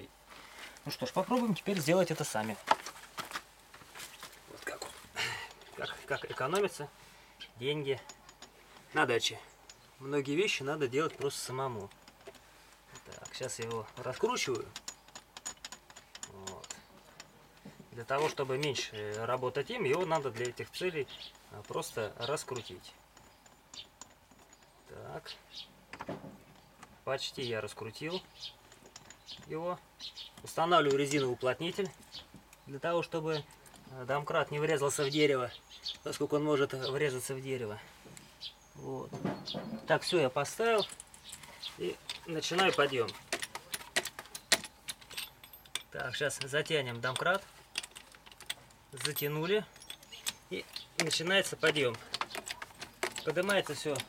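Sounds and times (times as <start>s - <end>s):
metal handle clinking on jack: 7.9s - 24.9s, 27.8s - 32.0s, 39.2s - 54.0s.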